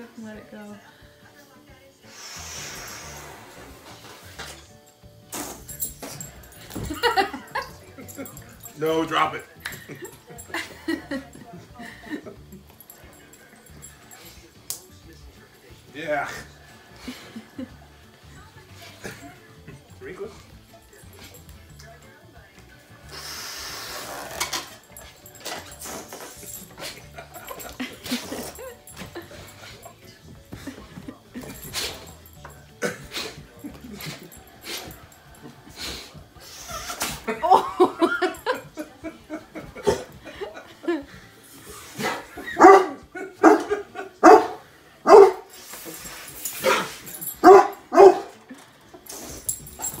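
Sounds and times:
dogs whining: 36.4s - 37.3s
dog barking: 42.0s - 45.5s, 46.6s - 48.4s.

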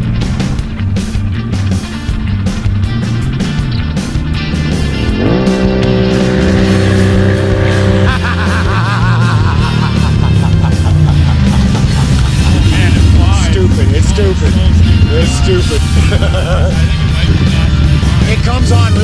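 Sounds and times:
atv engine revving: 0.0s - 19.0s.

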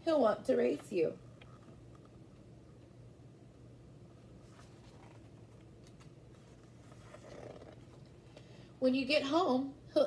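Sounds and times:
low steady hum: 0.0s - 10.0s
paper pages being turned: 4.4s - 8.1s.

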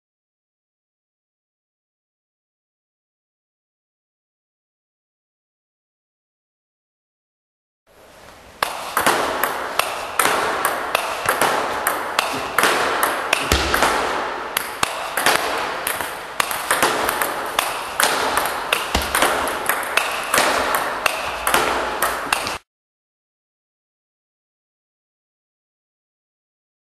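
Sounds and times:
table tennis balls clicking: 8.6s - 22.6s.

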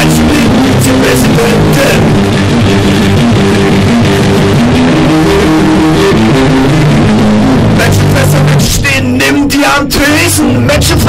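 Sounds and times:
punk rock band playing: 0.0s - 11.0s.

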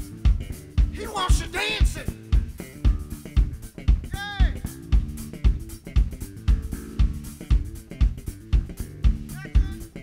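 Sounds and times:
bass guitar: 0.0s - 10.0s
drum kit kick and snare: 0.0s - 10.0s.

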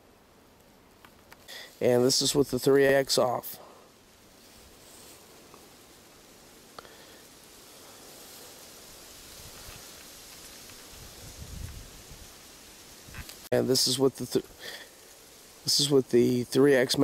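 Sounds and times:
outdoor hiss: 0.0s - 17.0s
light rustling: 3.6s - 13.5s.

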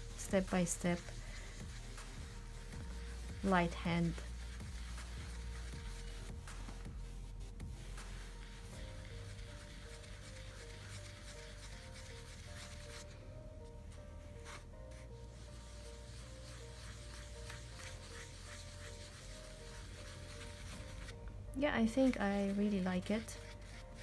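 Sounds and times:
ink tool scrubbing on paper: 0.0s - 7.0s, 7.7s - 13.2s, 13.9s - 21.2s, 21.8s - 24.0s
quiet background music: 0.0s - 24.0s.

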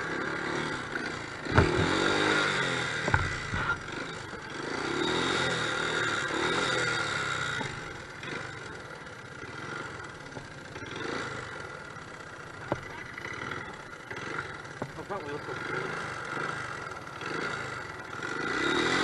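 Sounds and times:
dirt bike engine revving: 0.0s - 19.0s
sharp knocks: 1.5s - 2.2s, 3.0s - 3.8s.

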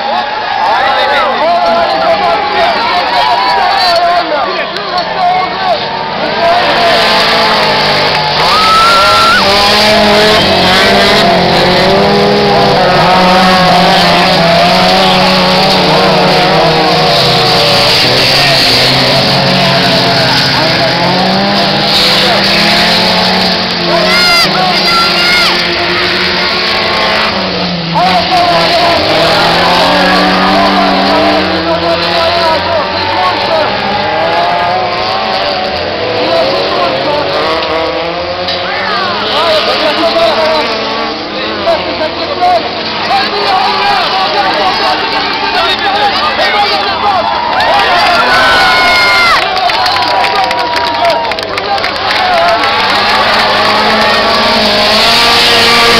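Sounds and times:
race car engines at full throttle: 0.0s - 55.9s.

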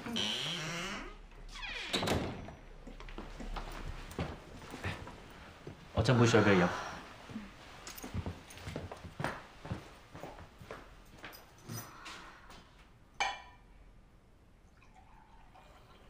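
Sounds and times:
footsteps on hard floor: 2.8s - 5.9s, 7.3s - 11.4s.

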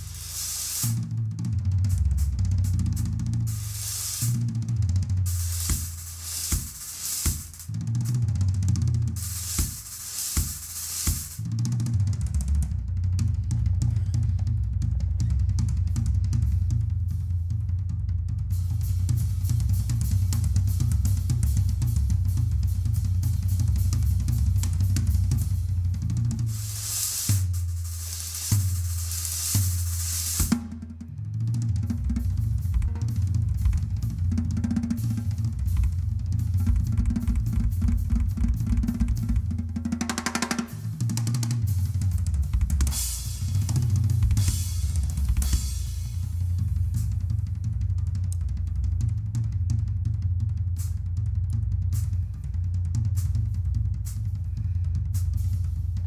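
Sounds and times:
bass drum and tom strokes: 0.0s - 56.0s.

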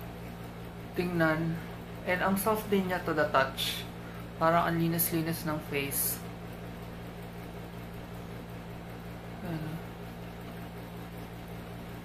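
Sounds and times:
low hum: 7.0s - 12.0s.

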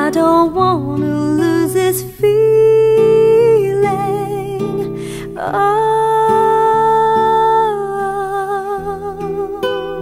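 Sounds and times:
acoustic guitar chords: 0.0s - 10.0s
singer breathing in: 4.9s - 5.4s.

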